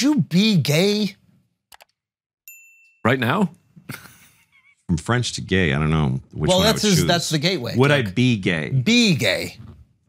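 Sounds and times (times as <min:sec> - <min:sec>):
notification bell ding: 0:02.5 - 0:03.4.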